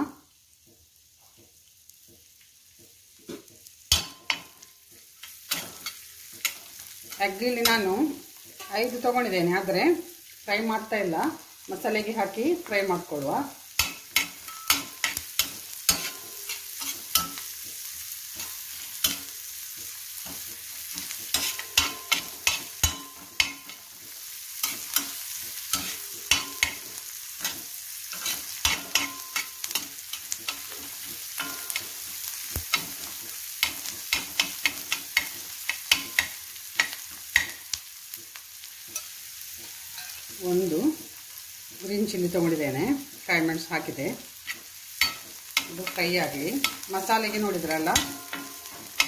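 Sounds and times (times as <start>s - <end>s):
onions sizzling in oil: 0.0s - 49.0s
spatula scraping and tapping pan: 0.6s - 9.0s, 13.7s - 40.4s, 44.4s - 49.0s.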